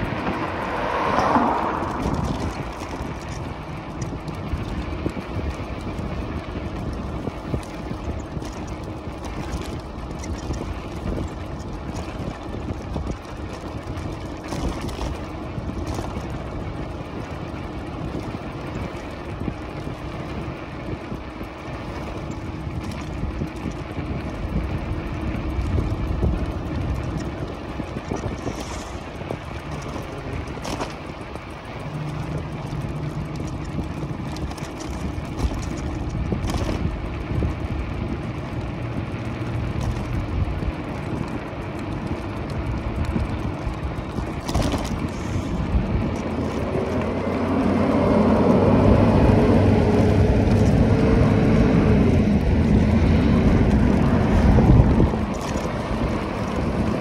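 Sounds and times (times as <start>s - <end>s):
road and wind rush: 0.0s - 57.0s.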